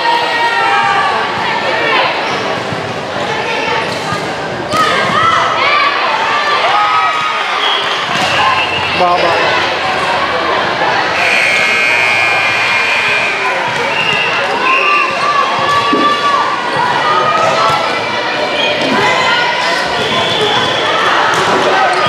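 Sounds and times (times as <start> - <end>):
voices of players and spectators: 0.0 - 22.0.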